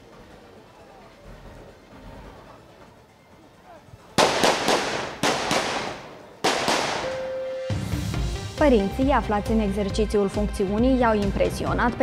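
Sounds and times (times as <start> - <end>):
rifle shots: 4.2 - 7.4.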